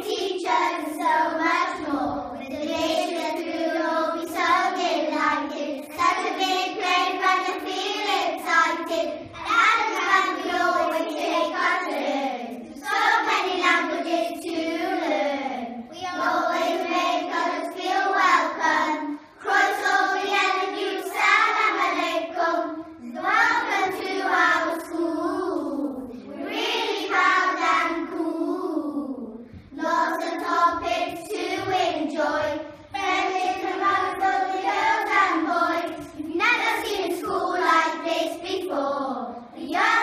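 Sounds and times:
children singing in unison: 0:00.0 - 0:40.0.

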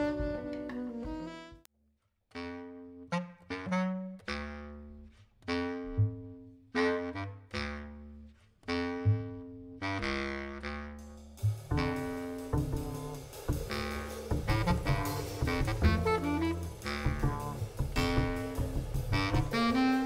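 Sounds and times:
double bass: 0:00.0 - 0:01.6, 0:02.5 - 0:20.0
drums: 0:00.0 - 0:01.6, 0:11.0 - 0:20.0
clarinet: 0:00.0 - 0:01.7, 0:02.3 - 0:20.0
small jazz band playing: 0:00.0 - 0:01.7, 0:05.5 - 0:20.0.

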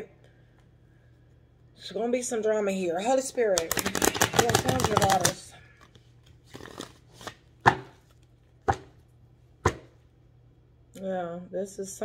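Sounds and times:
cards knocking on tabletop: 0:03.6 - 0:05.4, 0:07.6 - 0:08.0, 0:09.6 - 0:10.0.

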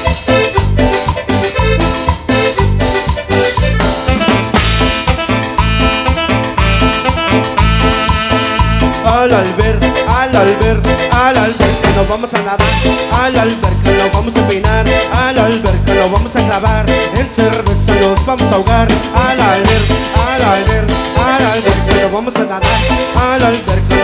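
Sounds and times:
drum kit: 0:00.0 - 0:24.0
electric bass: 0:00.0 - 0:24.0
electric guitar: 0:00.0 - 0:24.0
keyboard: 0:00.0 - 0:24.0
sliding lead melody: 0:00.0 - 0:24.0.

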